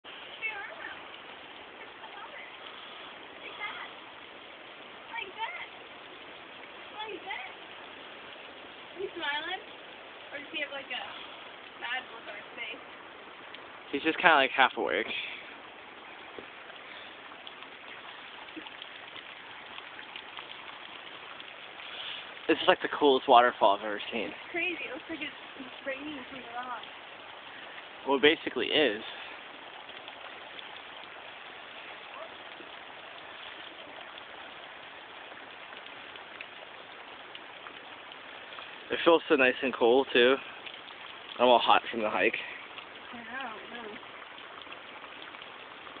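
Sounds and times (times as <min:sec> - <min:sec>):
water falling onto stones: 0:00.0 - 0:46.0
single water drops ticking: 0:12.8 - 0:46.0.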